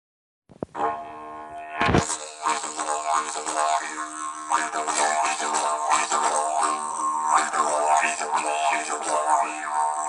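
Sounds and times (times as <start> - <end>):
didgeridoo drone: 0.7 - 10.0.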